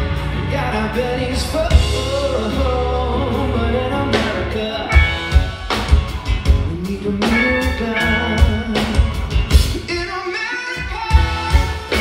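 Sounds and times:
live rock band: 0.0 - 12.0
man singing: 0.2 - 12.0.

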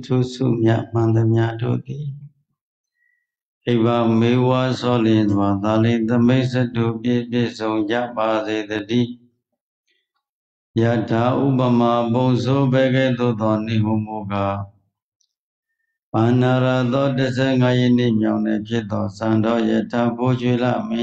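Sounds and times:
man chanting: 0.0 - 2.3, 3.7 - 9.2, 10.8 - 14.8, 16.2 - 21.0.

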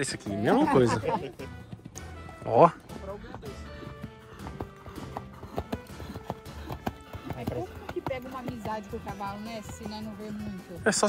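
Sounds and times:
horse hooves on wet dirt: 0.0 - 11.0.

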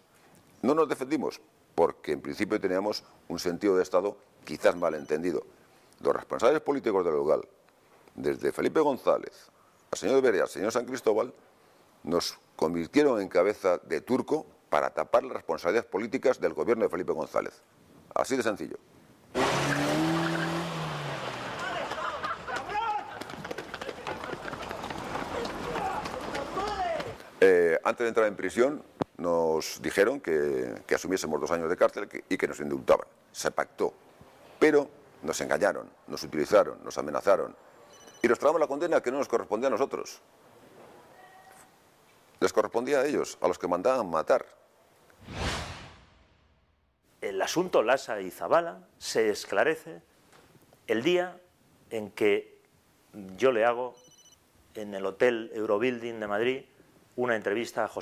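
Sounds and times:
motor vehicle rushing noise: 19.4 - 22.4, 45.2 - 46.4
whoosh sound effect: 45.2 - 46.8.

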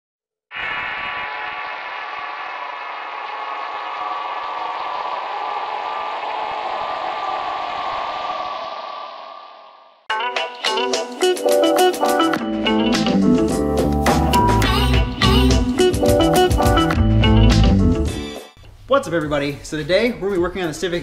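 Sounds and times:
dense sustained tonal drone: 1.1 - 10.0.

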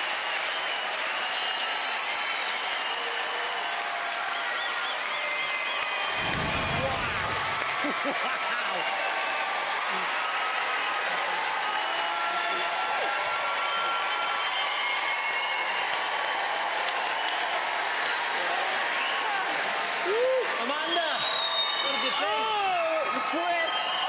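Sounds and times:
audience applauding: 0.0 - 24.0.

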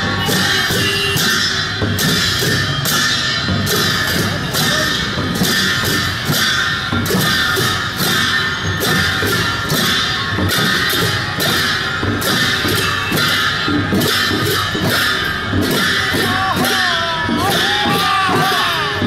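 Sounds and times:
barrel drums beating: 0.0 - 19.0.

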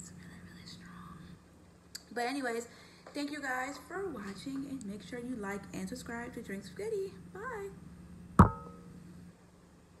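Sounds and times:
low background hum: 0.0 - 10.0
sharp knock on recorder: 8.4 - 8.8.

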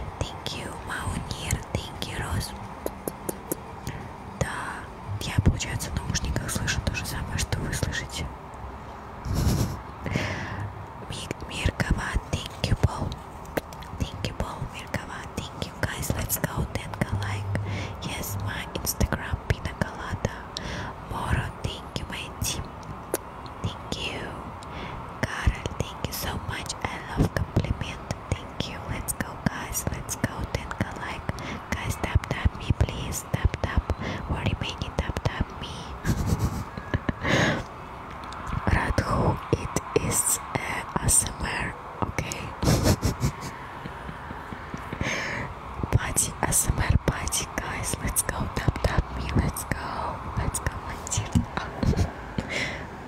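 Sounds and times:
person whispering: 0.0 - 8.3, 10.0 - 13.2, 13.8 - 22.7, 23.6 - 24.5, 25.2 - 37.6, 38.4 - 44.2, 45.0 - 52.8
mouth clicks and lip smacks: 2.8 - 4.0, 13.1 - 14.0, 36.8 - 38.6.

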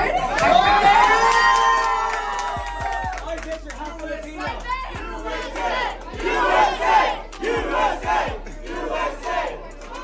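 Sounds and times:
crowd cheering and shouting: 0.0 - 10.0
hand clapping: 0.3 - 4.7
woman yelling: 4.4 - 5.0.

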